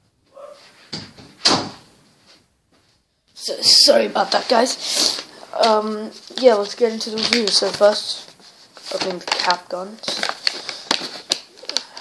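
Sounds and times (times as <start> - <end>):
door slamming shut: 0.9 - 1.8.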